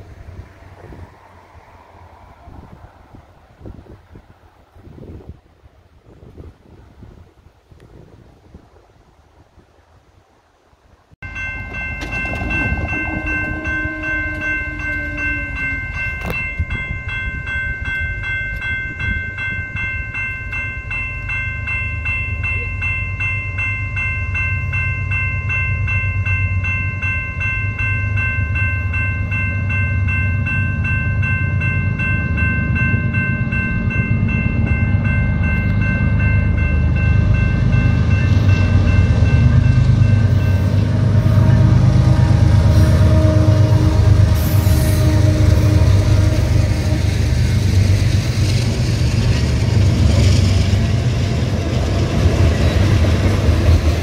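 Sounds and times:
diesel locomotive rumble: 0:11.2 - 0:54.0
railroad crossing bell ringing: 0:11.2 - 0:54.0.

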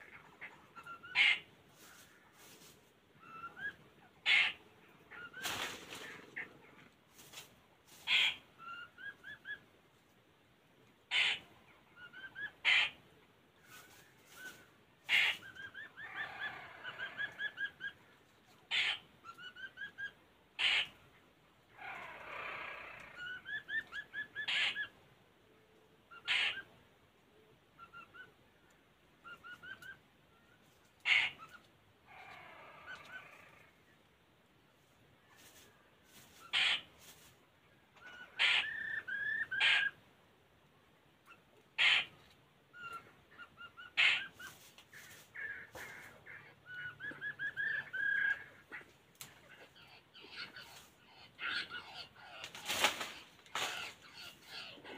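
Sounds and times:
harsh bird chattering: 0:08.1 - 0:09.6, 0:11.1 - 0:11.4, 0:18.7 - 0:21.1, 0:31.0 - 0:33.7, 0:36.4 - 0:37.0, 0:38.0 - 0:40.0, 0:41.3 - 0:54.9
sharp bird calls: 0:11.1 - 0:13.0, 0:13.6 - 0:25.0, 0:26.1 - 0:26.8, 0:27.8 - 0:33.9, 0:35.4 - 0:40.0, 0:41.2 - 0:54.9
birds whistling calls: 0:45.8 - 0:48.6.

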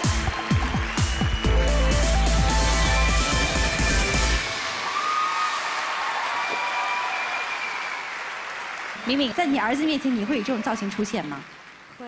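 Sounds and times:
dance song with heavy bass beat: 0:00.0 - 0:04.6
audience applause: 0:00.0 - 0:12.0.

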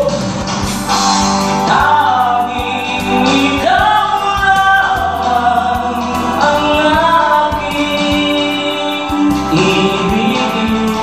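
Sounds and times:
man singing karaoke: 0:00.0 - 0:00.5, 0:01.6 - 0:11.0
backing track music: 0:00.0 - 0:11.0.

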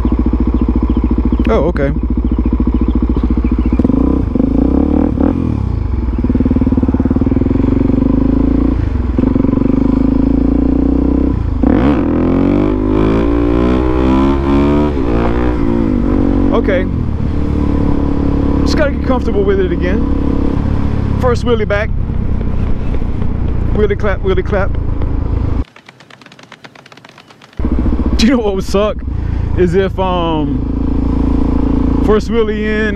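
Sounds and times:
motorcycle engine accelerating: 0:00.0 - 0:32.9.

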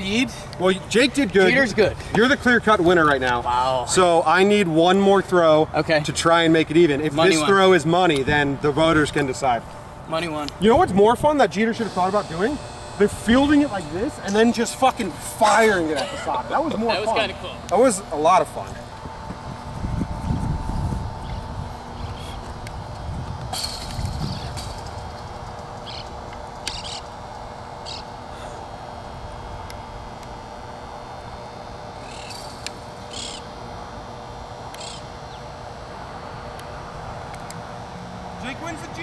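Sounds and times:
steady low hum: 0:00.0 - 0:39.0
microphone rumbles: 0:18.8 - 0:25.8.

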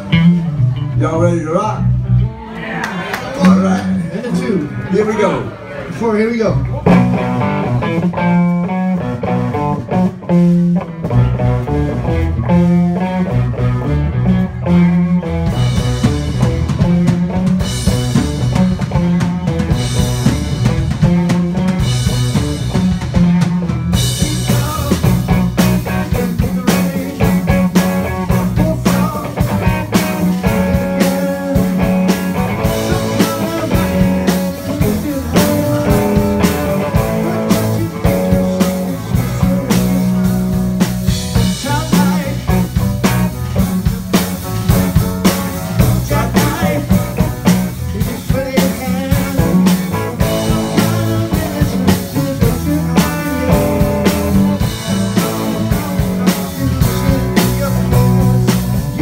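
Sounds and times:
rock band playing: 0:00.0 - 0:59.0.

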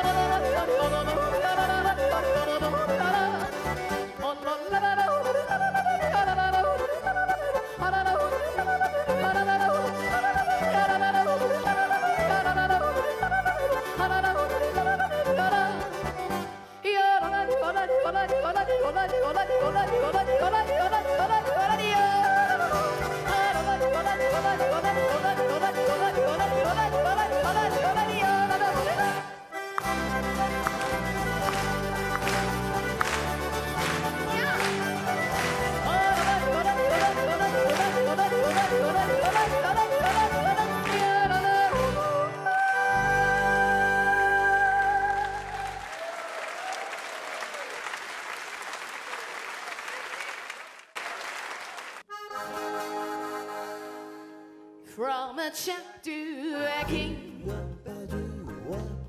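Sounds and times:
folk band playing: 0:00.0 - 0:45.9, 0:52.0 - 0:55.0, 0:56.6 - 0:59.0
person yodeling: 0:04.2 - 0:15.8, 0:16.9 - 0:29.4, 0:34.2 - 0:46.2
person yodeling fast: 0:34.2 - 0:46.8.

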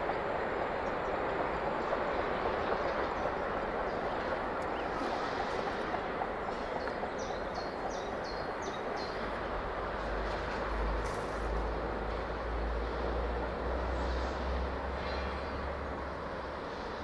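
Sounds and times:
steam locomotive approaching: 0:00.0 - 0:17.0.

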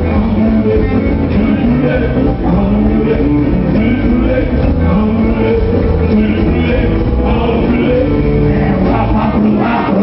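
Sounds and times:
electric guitar: 0:00.0 - 0:10.0
live rock band playing: 0:00.0 - 0:10.0.

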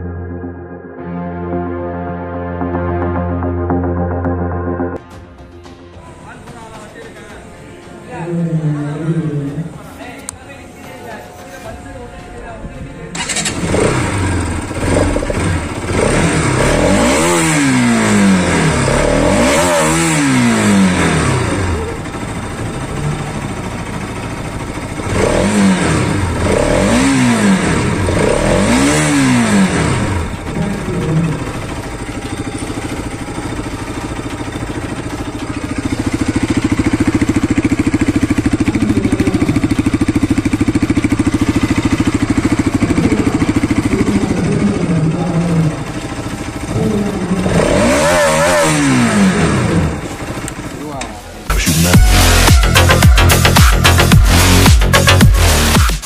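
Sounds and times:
motorcycle engine revving: 0:13.1 - 0:56.0.

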